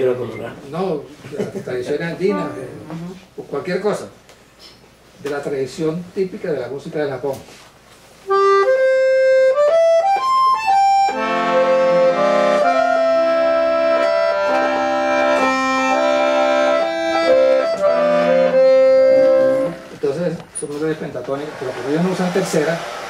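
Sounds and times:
piano accordion melody: 2.2s - 2.9s, 8.2s - 20.5s.

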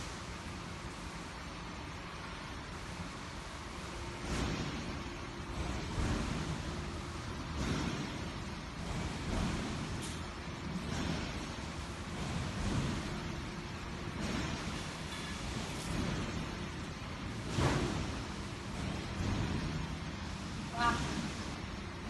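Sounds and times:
wire mesh machinery running: 0.0s - 22.0s.

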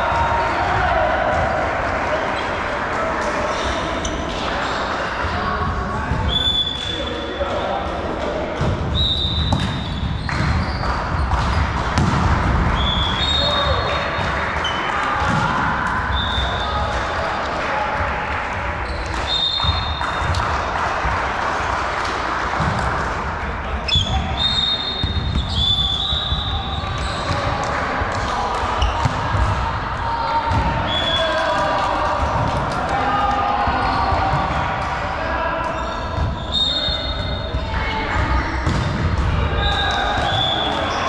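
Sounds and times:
volleyball hit and bouncing: 7.8s - 16.6s, 24.8s - 29.8s, 30.4s - 33.0s, 38.2s - 40.9s
sneakers squeaking on court: 9.2s - 12.2s, 23.9s - 27.5s, 28.8s - 29.2s, 35.8s - 37.6s.

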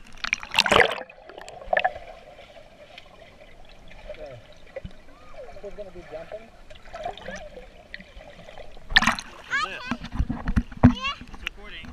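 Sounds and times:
water splashing: 0.0s - 11.9s.

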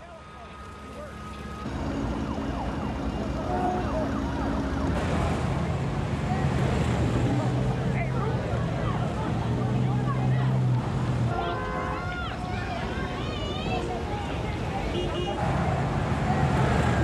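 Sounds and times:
crowd shouting and talking: 0.0s - 17.0s
vehicle engines and traffic: 0.0s - 17.0s.

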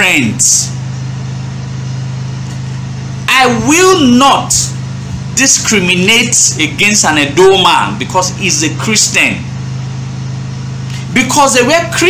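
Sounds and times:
steady low motor hum: 0.0s - 12.0s.

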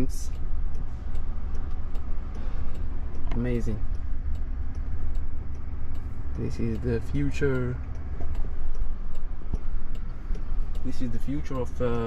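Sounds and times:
faint hum: 0.0s - 12.0s
light regular ticking: 0.0s - 12.0s
low cabin rumble: 0.0s - 12.0s.

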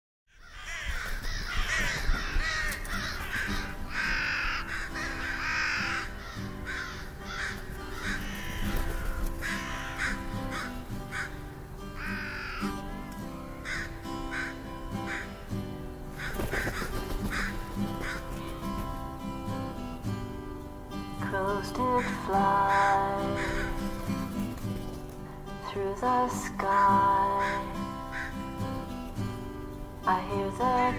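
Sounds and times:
crows cawing: 0.3s - 20.2s, 21.8s - 25.7s, 26.5s - 29.6s.

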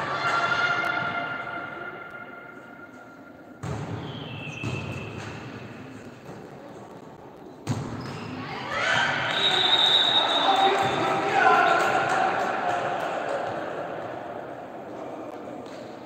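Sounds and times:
crowd cheering and shouting: 8.6s - 14.3s.

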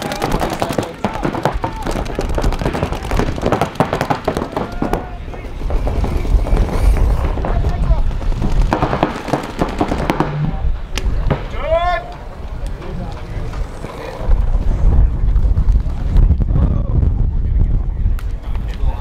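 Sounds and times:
players shouting: 0.0s - 6.0s
paintball markers firing: 0.0s - 14.1s
outdoor rumble: 0.0s - 19.0s.

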